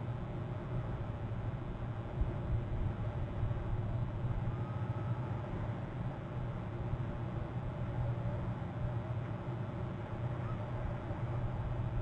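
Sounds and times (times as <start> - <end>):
low rumble with hiss: 0.0 - 12.0
faint thin rising whistle: 4.5 - 5.3.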